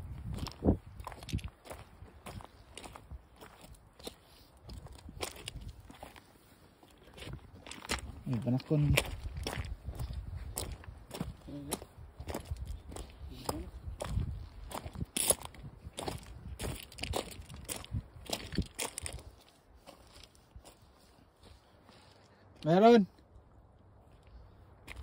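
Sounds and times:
footsteps crunching on gravel: 0.0 - 22.8, 24.1 - 25.0.

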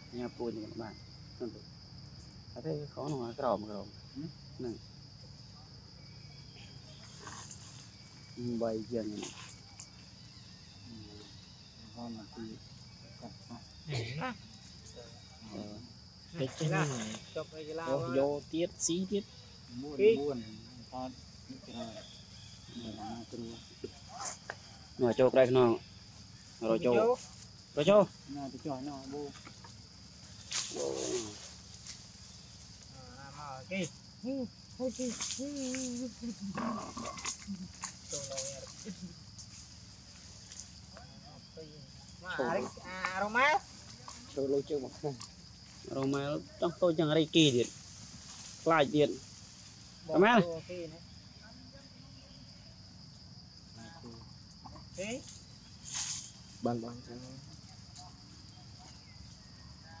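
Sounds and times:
insects droning: 0.0 - 60.0.

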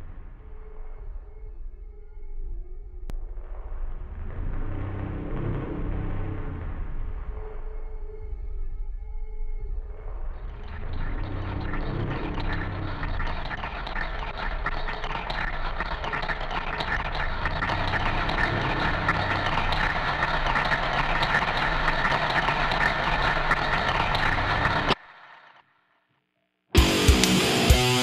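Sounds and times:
noisy synthesized rushing texture: 3.2 - 8.1, 10.3 - 25.6.

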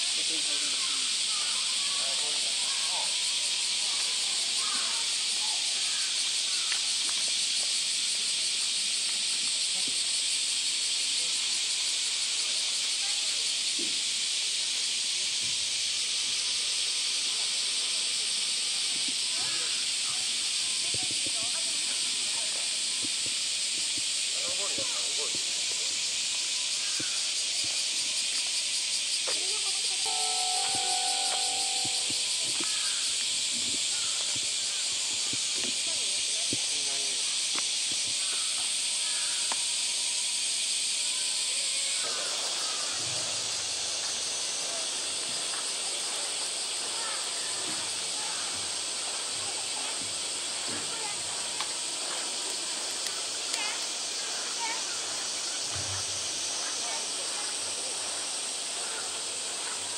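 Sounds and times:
cicada chorus hissing: 0.0 - 59.9
faint voices: 29.3 - 39.9
short steady tones: 30.1 - 32.6.

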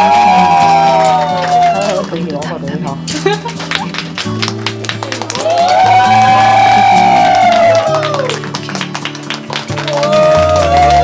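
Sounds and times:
slow background music: 0.0 - 11.0.

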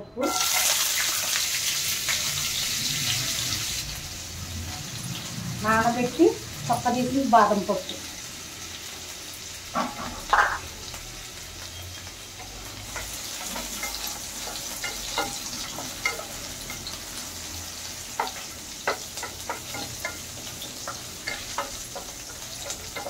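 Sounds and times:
oil sizzling in frying pan: 0.2 - 23.0.

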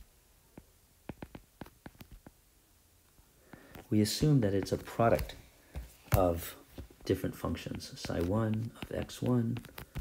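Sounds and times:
stylus tapping on glass screen: 0.5 - 2.4, 7.6 - 10.0.

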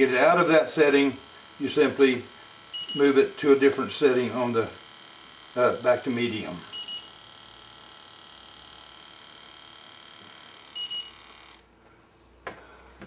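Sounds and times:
faint high whine: 0.0 - 12.2.

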